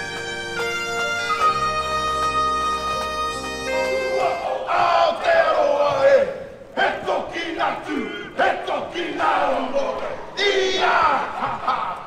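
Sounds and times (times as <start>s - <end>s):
group shouting battle cries: 4.1s - 11.8s.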